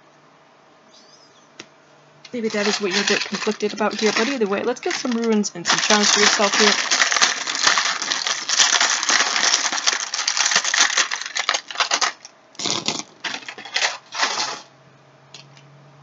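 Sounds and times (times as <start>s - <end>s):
stones rattling in plastic tub: 2.3s - 14.7s.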